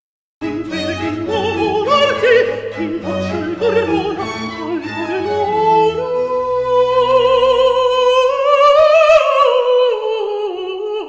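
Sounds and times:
countertenor singing: 0:00.4 - 0:11.0.

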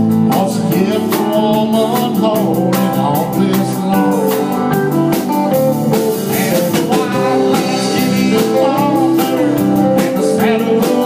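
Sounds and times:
drum kit with cymbals: 0:00.0 - 0:11.0
live country band playing: 0:00.0 - 0:11.0.

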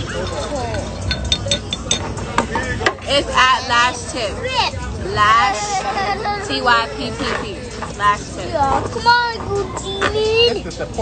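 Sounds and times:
tableware clinking: 0:00.0 - 0:03.5
restaurant background noise: 0:00.0 - 0:11.0.

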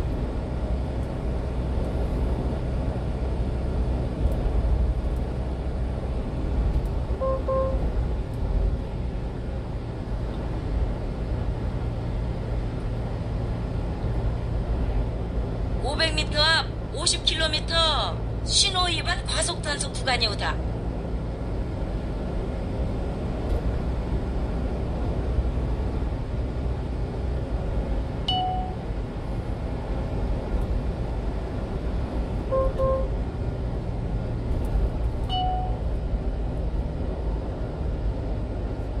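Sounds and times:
engine and road rumble: 0:00.0 - 0:39.0.

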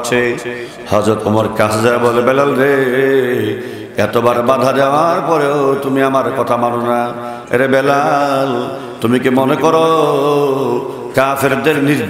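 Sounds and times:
man chanting melodically: 0:00.0 - 0:12.0.

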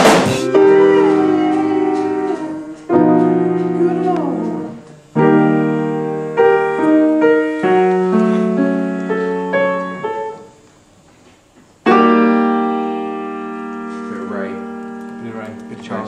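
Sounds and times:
piano chords and notes: 0:00.0 - 0:10.7, 0:11.8 - 0:16.0.

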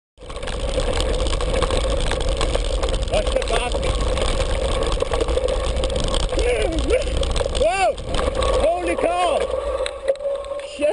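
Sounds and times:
bike tires rolling on dirt: 0:00.2 - 0:10.9
steady mid-pitched hum: 0:00.2 - 0:10.9
wind rumbling on microphone: 0:00.2 - 0:10.9.

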